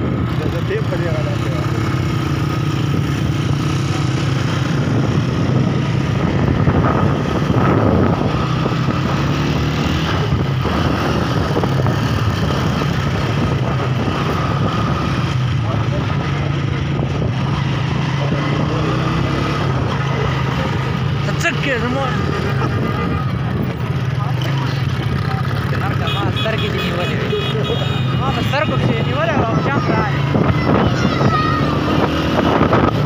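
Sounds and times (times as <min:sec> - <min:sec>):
people's voices: 0:00.0 - 0:33.0
vehicle engines running: 0:00.0 - 0:33.0.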